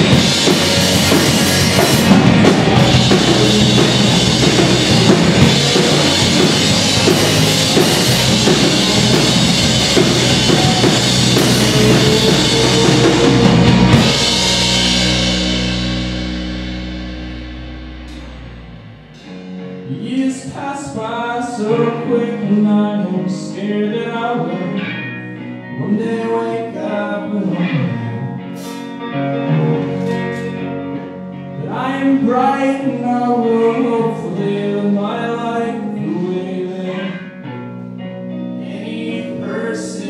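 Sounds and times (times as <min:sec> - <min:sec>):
rock band playing loudly: 0:00.0 - 0:26.2, 0:27.4 - 0:32.2.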